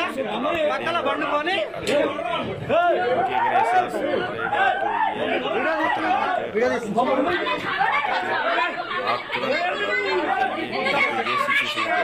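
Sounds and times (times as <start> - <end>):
overlapping voices talking: 0.0 - 12.0.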